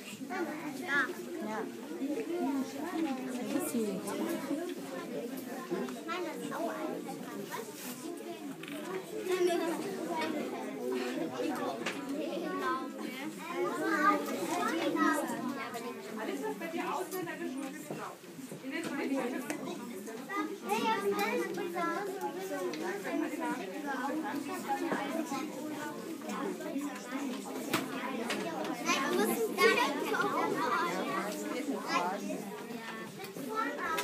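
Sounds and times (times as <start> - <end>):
adults talking: 0.0 - 34.0
children chattering: 0.0 - 34.0.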